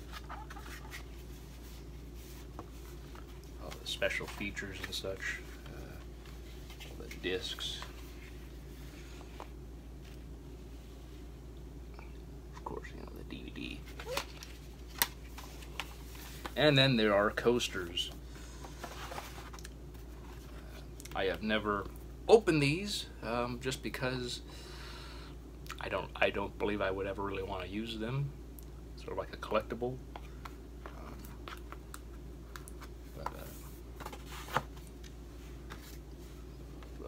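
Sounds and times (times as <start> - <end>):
plastic disc case rustling: 0.0 - 10.3, 13.7 - 16.7, 18.6 - 20.5, 31.2 - 37.0
steady low hum: 0.0 - 37.0.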